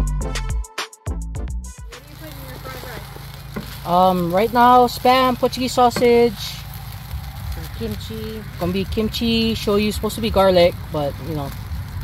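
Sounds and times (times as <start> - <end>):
faint voices: 1.9 - 11.6
low mechanical hum: 2.5 - 12.0
woman speaking: 3.8 - 6.6, 7.6 - 11.6.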